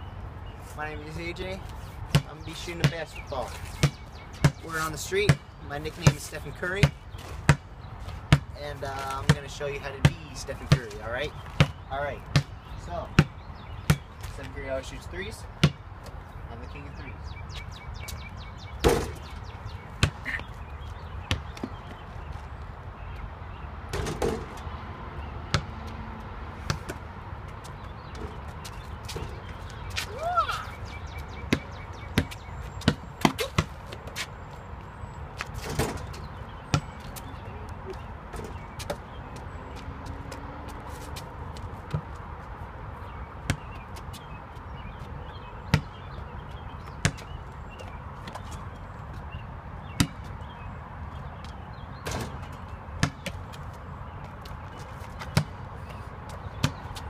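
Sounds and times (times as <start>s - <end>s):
basketball bouncing on asphalt: 2.1s - 14.5s, 15.5s - 16.3s, 17.3s - 30.2s, 30.8s - 57.0s
ball hitting backboard and rim: 6.8s - 7.6s, 15.6s - 15.8s, 18.8s - 19.3s, 23.9s - 24.6s, 31.5s - 33.9s, 35.6s - 36.9s, 50.0s - 50.3s, 52.0s - 53.4s, 55.3s - 55.6s, 56.6s - 56.9s.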